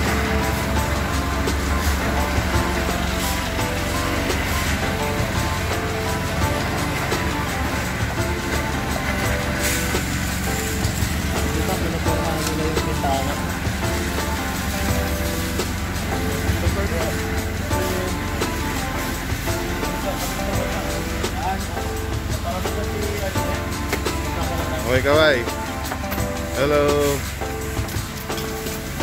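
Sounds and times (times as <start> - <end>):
background music with voice: 0.0 - 29.0.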